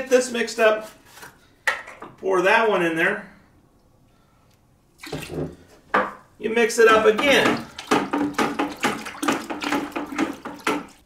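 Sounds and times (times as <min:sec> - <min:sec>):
liquid sloshing in a bucket: 0:05.0 - 0:05.7, 0:07.0 - 0:11.0.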